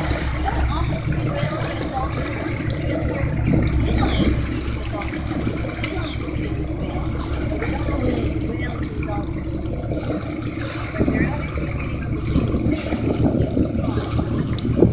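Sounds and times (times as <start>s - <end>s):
boat engine drone: 0.0s - 14.9s
water splashing along hull: 0.0s - 14.9s.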